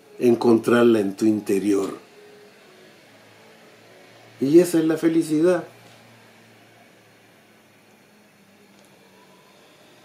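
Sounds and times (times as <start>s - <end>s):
quiet steady hiss: 0.0s - 10.0s.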